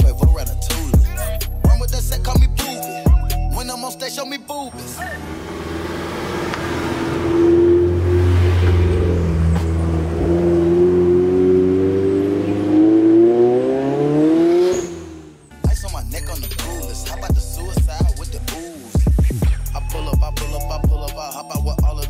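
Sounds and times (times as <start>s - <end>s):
car engine accelerating: 4.8s - 18.4s.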